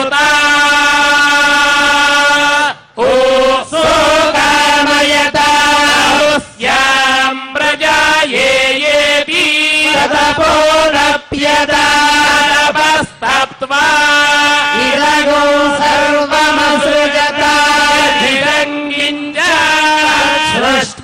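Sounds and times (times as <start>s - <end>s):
men chanting: 0.0s - 21.0s.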